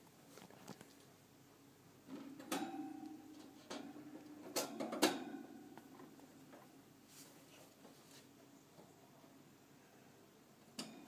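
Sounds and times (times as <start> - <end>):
cage clicks and knocks: 2.1 - 3.9, 4.5 - 5.5.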